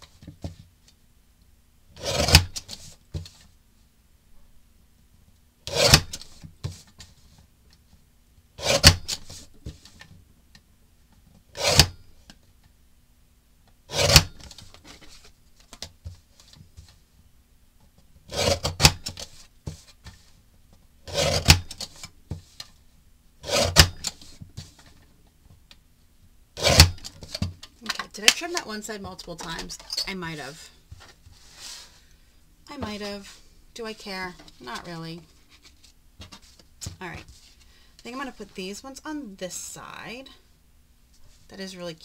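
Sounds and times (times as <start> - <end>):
paper trimmer blade cutting: 2.0 - 2.5, 23.4 - 23.9, 26.6 - 27.0.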